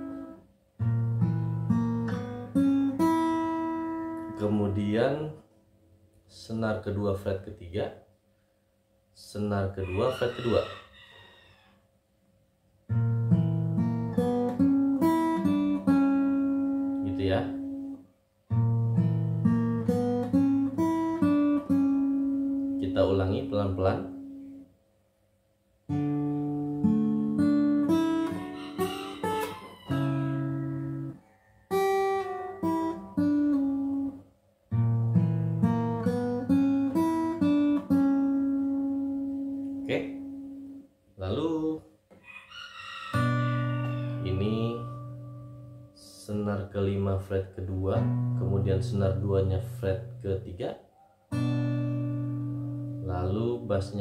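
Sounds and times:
acoustic guitar fingerpicking: 0.0s - 5.4s, 12.9s - 24.7s, 25.9s - 40.9s, 43.1s - 46.0s, 48.0s - 50.2s, 51.3s - 54.0s.

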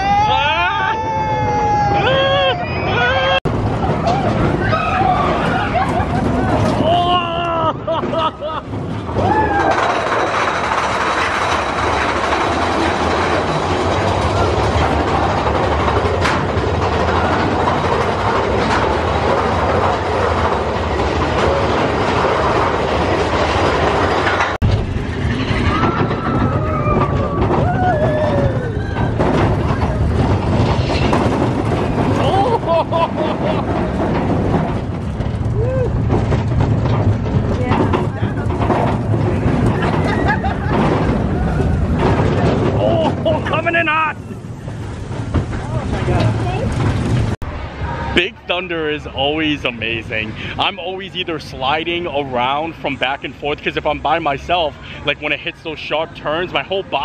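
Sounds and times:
roller coaster rumble and clatter: 0.0s - 57.0s.

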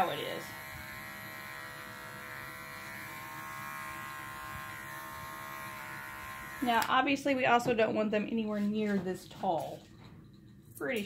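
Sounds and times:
electric clippers buzzing: 0.0s - 7.6s.

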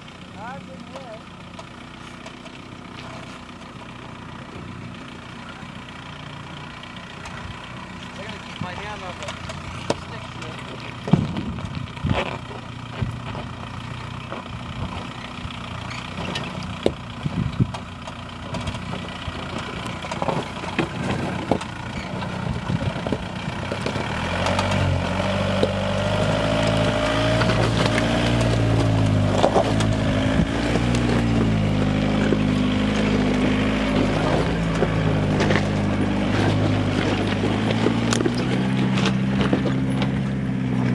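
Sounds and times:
diesel engine crawling over rocks: 0.0s - 40.9s
rocks clicking under tyres: 0.9s - 4.7s, 6.0s - 40.9s.

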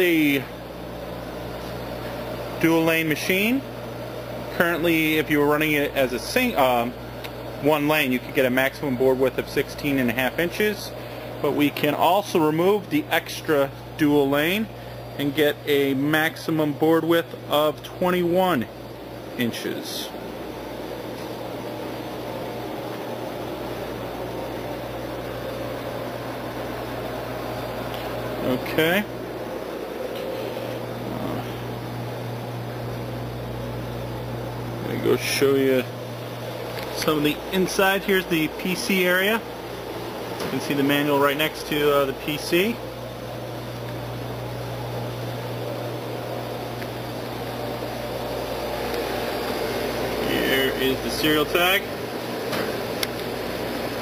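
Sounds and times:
constant low hum: 0.0s - 54.0s
convection fans rushing air: 0.0s - 54.0s.

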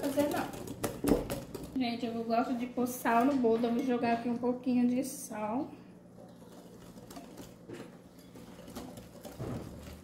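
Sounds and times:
wire whisk in batter: 0.0s - 1.8s, 6.2s - 10.0s.

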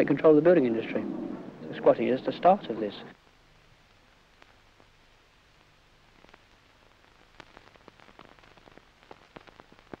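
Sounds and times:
low hiss and hum: 0.0s - 10.0s.

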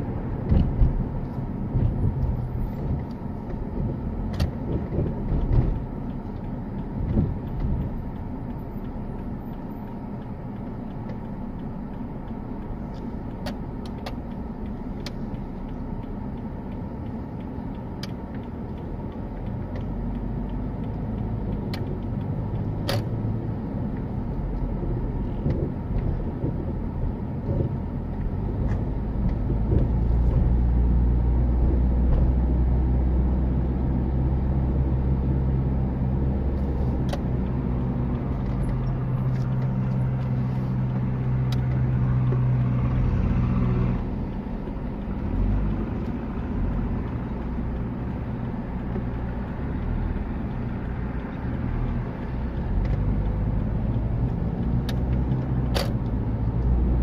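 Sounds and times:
car engine and road noise: 0.0s - 57.0s.

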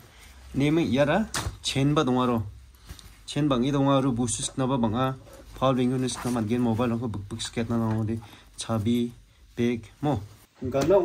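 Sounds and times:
man speaking: 0.5s - 2.6s, 3.3s - 11.0s.

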